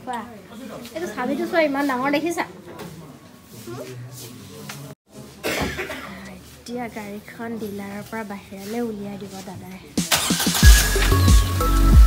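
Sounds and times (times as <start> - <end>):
person coughing: 5.4 - 6.3.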